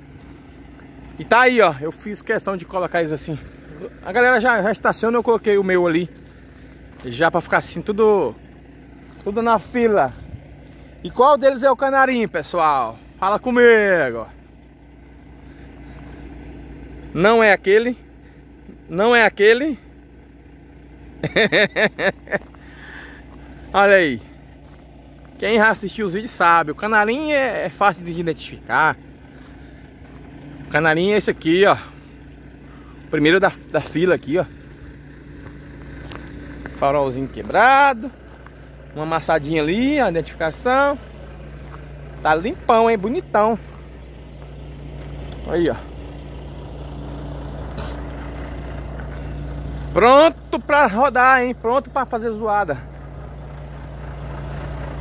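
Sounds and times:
diesel truck engine idling: 0.0 - 55.0
man laughing: 21.2 - 23.2.

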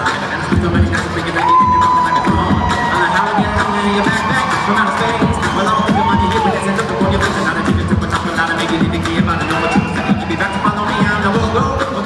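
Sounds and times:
bass line: 0.0 - 12.0
beatboxed rhythm: 0.0 - 12.0
crowd cheering: 0.0 - 12.0.

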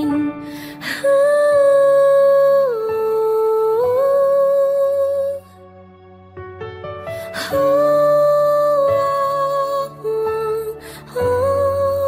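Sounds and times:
soft sustained backing music: 0.0 - 12.0.

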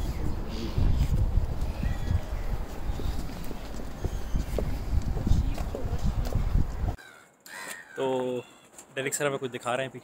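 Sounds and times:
wind buffeting microphone: 0.0 - 7.0
footsteps on stone pavement: 0.3 - 7.0.

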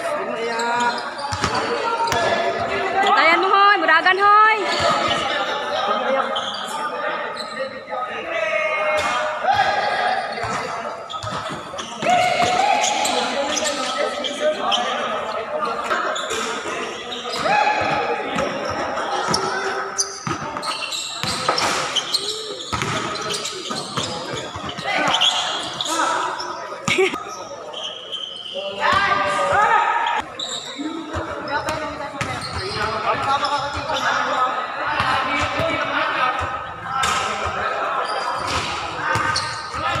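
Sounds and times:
players shouting: 0.6 - 31.6.

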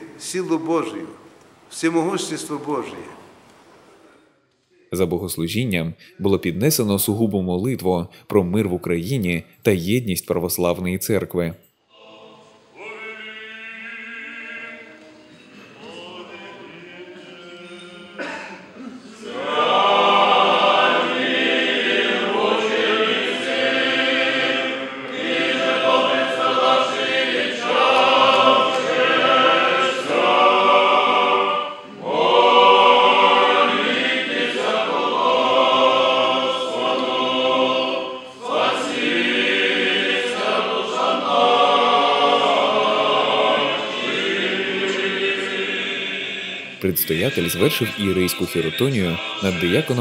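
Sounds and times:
choir singing hymns unaccompanied: 11.9 - 50.0.

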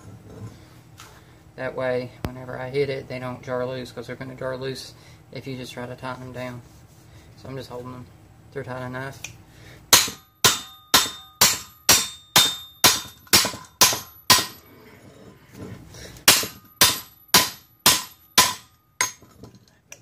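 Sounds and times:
hammer striking steel plate: 9.9 - 14.6, 16.2 - 19.3.

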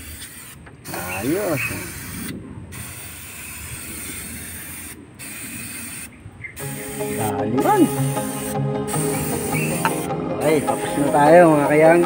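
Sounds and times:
aerosol spray hissing: 0.0 - 12.0
music: 6.6 - 12.0.

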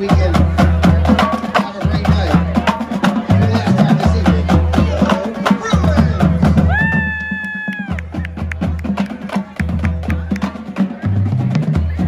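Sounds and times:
bass drum beats: 0.0 - 12.0.

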